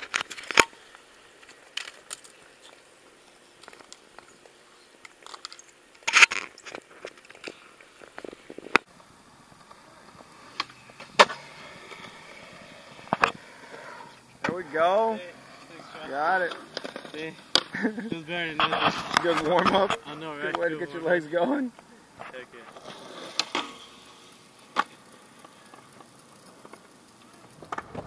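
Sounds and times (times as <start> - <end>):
skateboard wheels rolling on concrete: 0.0 - 28.0
skateboards clacking on ground: 0.0 - 28.0.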